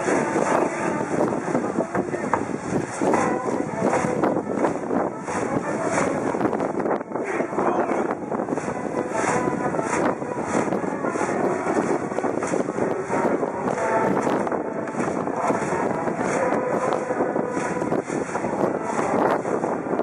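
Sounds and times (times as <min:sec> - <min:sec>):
brass band playing: 0:00.0 - 0:20.0
crowd chanting and singing: 0:00.0 - 0:20.0.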